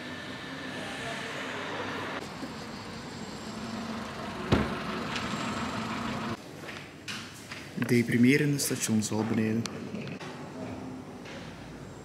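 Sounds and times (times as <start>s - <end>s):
road traffic rushing: 0.0s - 6.4s
vehicle engine hum: 0.0s - 6.4s.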